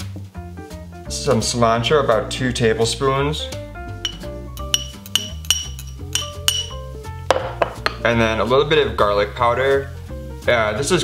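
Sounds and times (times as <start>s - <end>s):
background music: 0.0s - 11.0s
metal fork clinking ceramic bowl: 4.0s - 6.8s.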